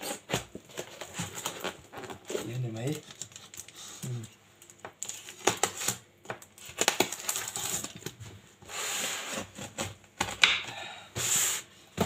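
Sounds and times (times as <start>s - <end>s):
knife scraping packing tape: 0.0s - 2.5s.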